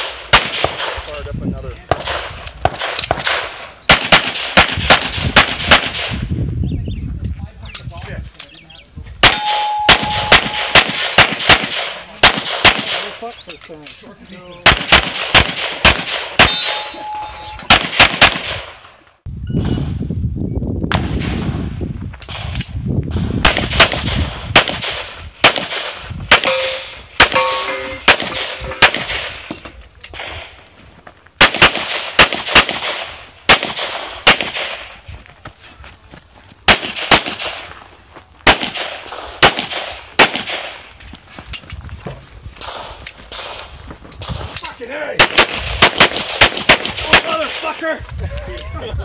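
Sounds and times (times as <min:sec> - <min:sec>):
pistol shots: 0:00.0 - 0:01.1, 0:01.9 - 0:06.2, 0:09.2 - 0:13.2, 0:14.6 - 0:18.9, 0:23.4 - 0:30.5, 0:31.4 - 0:35.0, 0:36.7 - 0:37.7, 0:38.4 - 0:40.8, 0:42.6 - 0:43.7, 0:45.2 - 0:47.7
metallic ring: 0:09.2 - 0:10.7, 0:16.4 - 0:17.7, 0:26.5 - 0:28.8.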